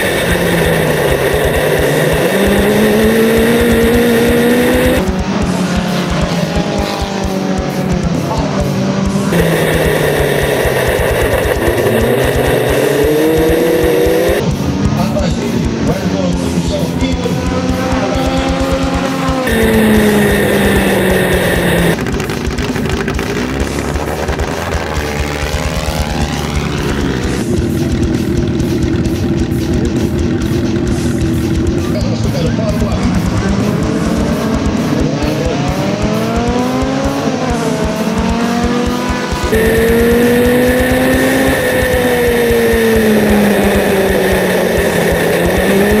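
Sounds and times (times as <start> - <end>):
cars passing at speed: 0.0 - 14.5, 17.3 - 22.0
racing car engines revving: 0.0 - 46.0
background music: 22.0 - 46.0.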